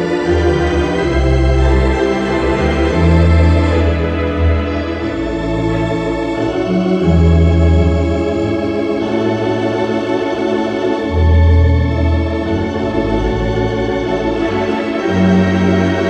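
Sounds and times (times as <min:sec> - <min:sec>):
pipe organ playing chords: 0:00.0 - 0:16.0.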